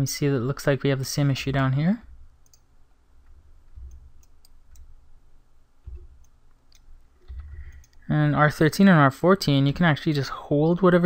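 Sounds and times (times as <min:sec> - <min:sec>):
low steady hum: 0:00.0 - 0:11.0
computer mouse clicks: 0:02.4 - 0:04.9, 0:05.9 - 0:08.0.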